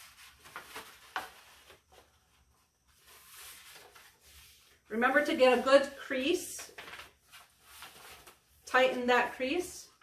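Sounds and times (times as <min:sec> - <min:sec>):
paper crinkling: 0:00.0 - 0:04.7, 0:06.7 - 0:08.6.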